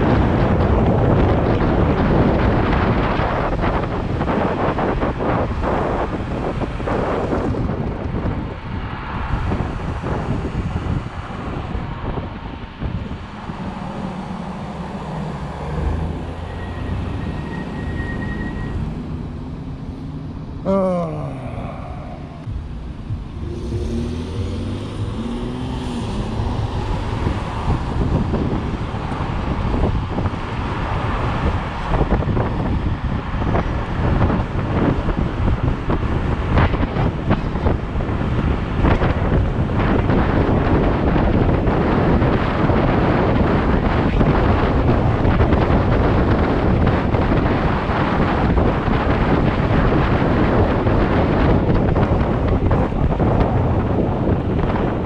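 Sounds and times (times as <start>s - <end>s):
wind buffeting microphone: 0.0s - 20.5s, 21.1s - 55.0s
car traffic: 0.0s - 55.0s.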